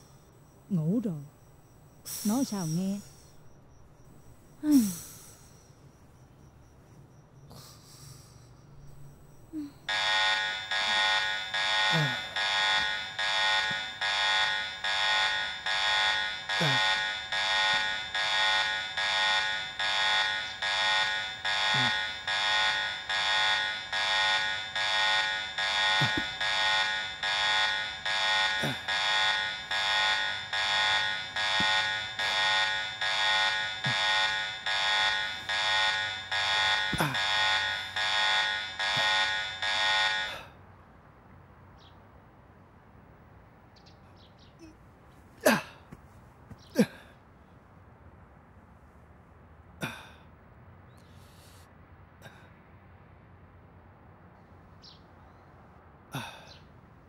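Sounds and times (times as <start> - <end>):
electronic alarm beeping: 0.0 - 7.5, 8.4 - 40.4.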